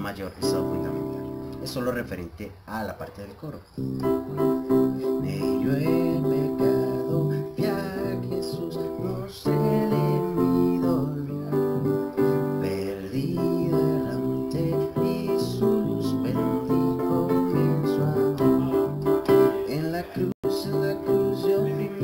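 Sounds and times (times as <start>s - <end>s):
electronic keyboard playing hymn chords: 0.4s - 2.0s, 3.8s - 22.0s
low bass line: 3.8s - 19.6s.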